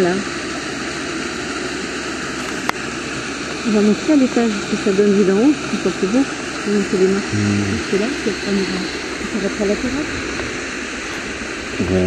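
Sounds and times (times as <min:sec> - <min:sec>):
stream running over stones: 0:00.0 - 0:07.3.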